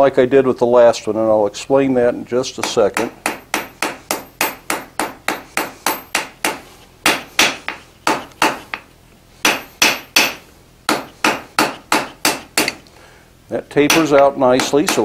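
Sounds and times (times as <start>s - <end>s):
hammer striking hot iron on anvil: 2.6s - 12.8s, 13.9s - 15.0s.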